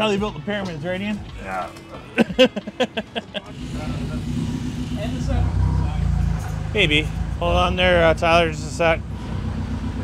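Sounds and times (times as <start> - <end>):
people laughing: 2.0 - 4.1
forklift engine running: 3.5 - 10.0.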